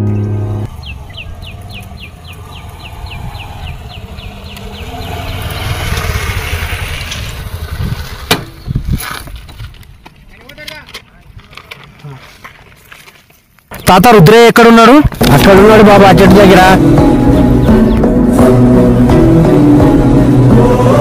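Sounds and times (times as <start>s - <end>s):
motorcycle engine approaching: 0.0s - 9.8s, 15.2s - 21.0s.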